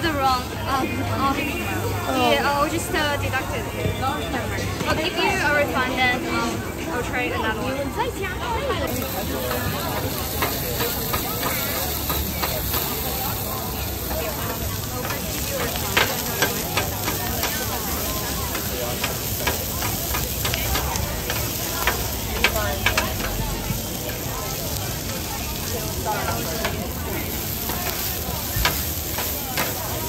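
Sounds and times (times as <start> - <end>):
food sizzling on a griddle: 0.0 - 30.0
metal spatulas clicking and scraping: 14.0 - 23.4, 26.2 - 30.0.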